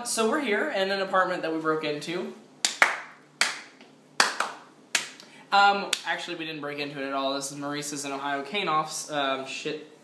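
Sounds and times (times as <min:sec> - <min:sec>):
hand snaps: 0:02.6 - 0:05.3.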